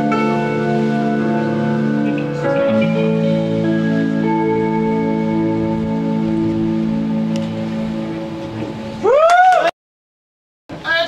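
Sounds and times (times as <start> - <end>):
live band sustained chord: 0.0 - 9.1.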